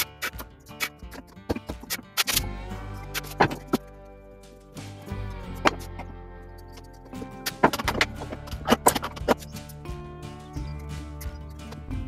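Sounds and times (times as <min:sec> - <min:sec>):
chisel scraping wood: 0:00.0 - 0:04.0
background music: 0:00.0 - 0:12.0.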